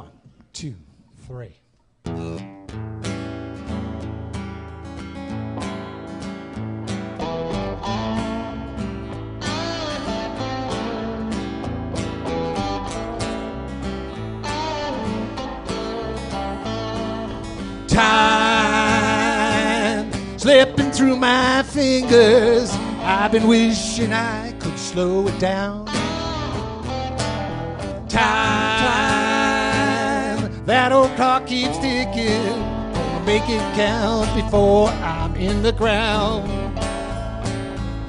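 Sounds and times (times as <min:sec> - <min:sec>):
bass guitar: 0:00.0 - 0:00.5, 0:02.0 - 0:38.0
strummed acoustic guitar: 0:02.0 - 0:38.0
electric guitar: 0:02.1 - 0:38.0
wavering lead melody: 0:07.2 - 0:24.5, 0:25.9 - 0:38.0.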